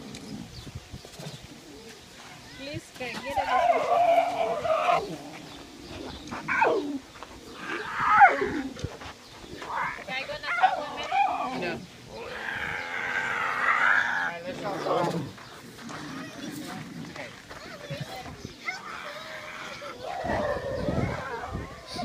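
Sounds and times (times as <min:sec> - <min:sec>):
cubs crying: 0:02.5 - 0:05.2, 0:06.5 - 0:08.8, 0:09.6 - 0:14.5, 0:18.6 - 0:22.0.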